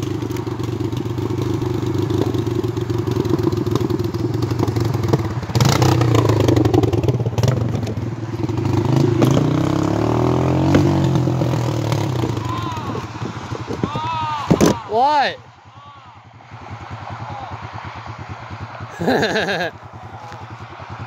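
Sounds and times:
atv engine revving: 0.0 - 21.0.

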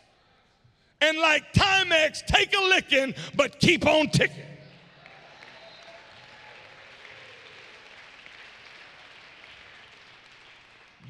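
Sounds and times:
distant congregation applauding: 4.6 - 11.0.

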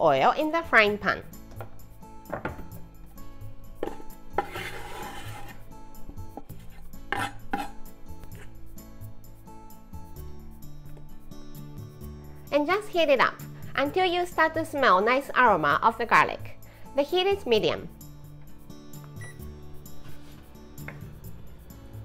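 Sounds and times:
soft background music: 0.0 - 22.0
knife scraping cutting board: 3.8 - 8.5.

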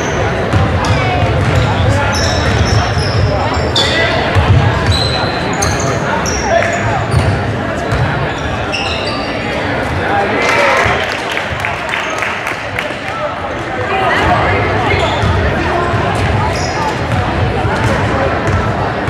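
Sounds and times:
sneakers squeaking: 0.0 - 10.2, 14.1 - 19.0.

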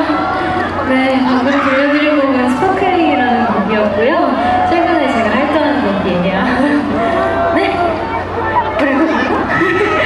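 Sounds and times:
woman talking through loudspeaker: 0.0 - 10.0.

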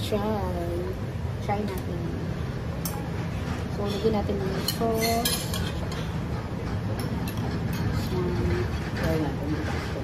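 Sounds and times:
cutlery clinking on plates: 3.8 - 8.1.

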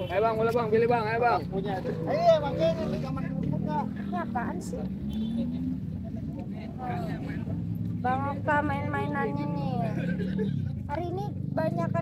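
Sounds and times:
low rumble of motor traffic: 0.0 - 12.0
voices of busy street market: 0.0 - 12.0.

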